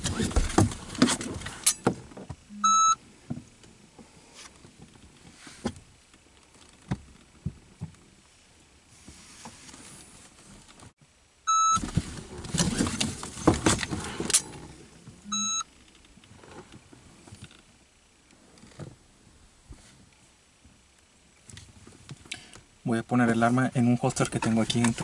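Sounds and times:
rustling and knocks: 0.0s - 2.5s, 11.8s - 15.2s
shot timer beep: 2.5s - 3.0s, 11.5s - 11.8s, 15.3s - 15.6s.

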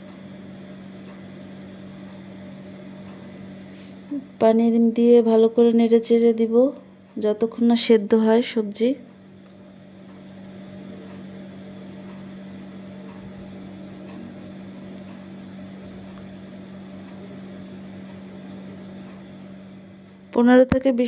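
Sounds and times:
constant low hum: 0.0s - 21.0s.

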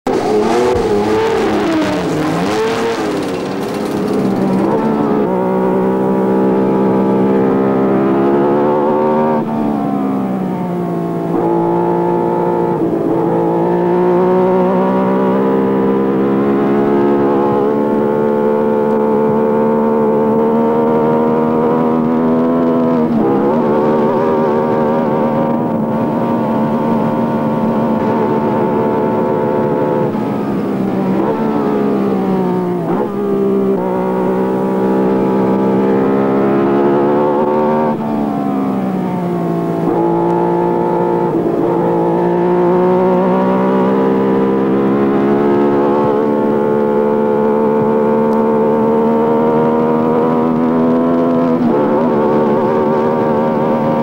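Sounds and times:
race car engine at high revs: 0.0s - 54.0s.

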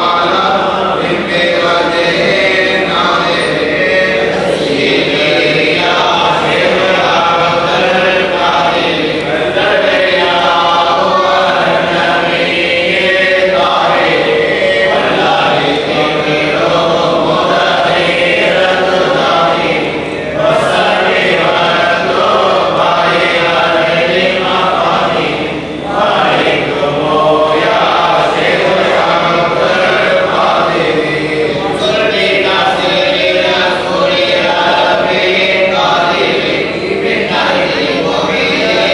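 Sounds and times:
men and boys chanting: 0.0s - 38.9s.

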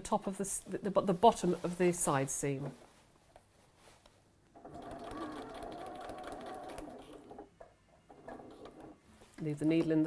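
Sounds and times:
sewing machine stitching: 4.6s - 7.5s.

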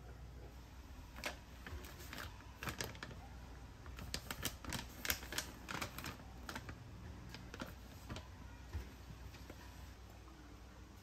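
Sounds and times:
plastic bag crinkling: 1.1s - 8.4s.

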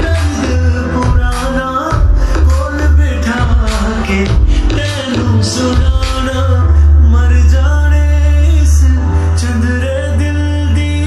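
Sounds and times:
heavy steady bass: 0.0s - 11.0s
man singing pop song: 0.0s - 11.0s.

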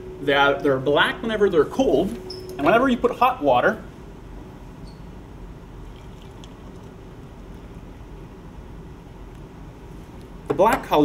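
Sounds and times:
room noise: 0.0s - 5.4s
water pouring into mug: 5.8s - 7.0s.

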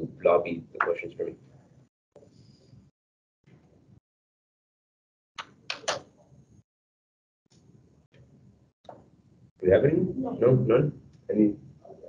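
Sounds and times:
faint room noise: 7.6s - 12.0s.

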